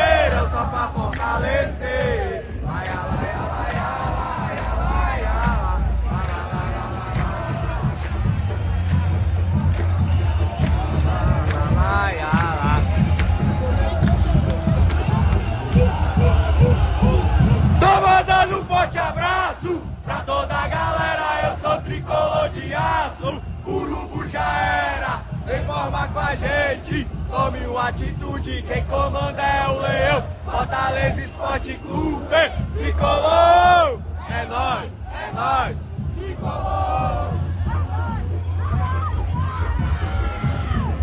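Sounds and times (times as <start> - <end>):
crowd chanting: 0.0 - 41.0.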